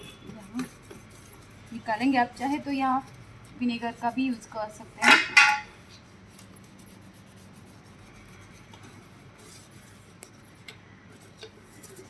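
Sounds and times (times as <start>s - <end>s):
brush scrubbing glass shelf: 0.3s - 12.0s.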